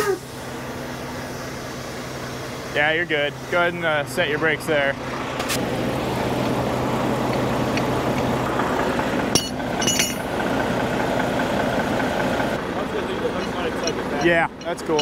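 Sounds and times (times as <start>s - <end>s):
truck engine idling: 0.0s - 15.0s
sharp metal clinks: 9.4s - 10.3s, 13.3s - 15.0s.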